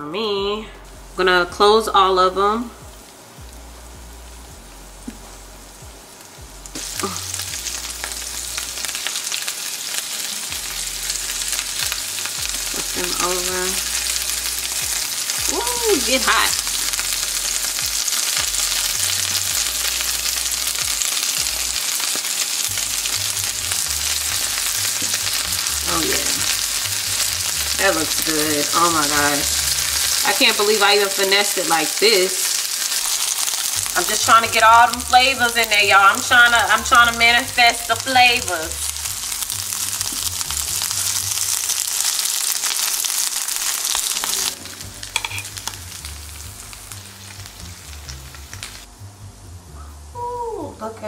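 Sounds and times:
tortillas sizzling in a pan: 2.6 - 49.1.

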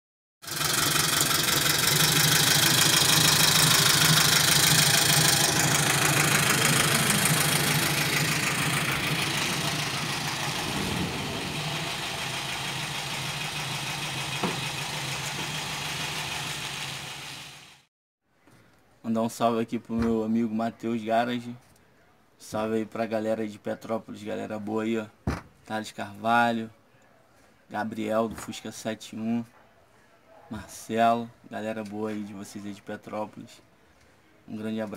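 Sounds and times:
car engine idling: 0.5 - 17.8
strong hiss: 9.2 - 14.2.

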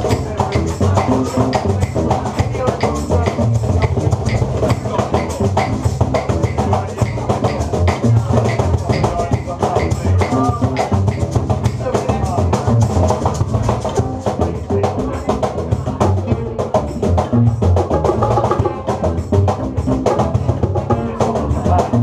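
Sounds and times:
hand percussion clicking rhythm: 0.0 - 22.0
upright bass notes: 0.0 - 22.0.

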